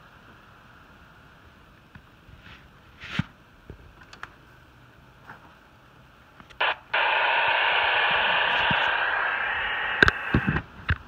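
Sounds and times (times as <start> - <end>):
sharp clicks: 6.6 - 10.6
radio static hiss: 6.6 - 11.0.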